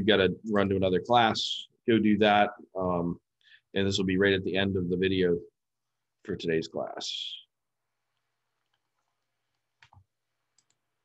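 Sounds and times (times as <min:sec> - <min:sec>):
faint computer clicks: 0:08.2 - 0:10.8.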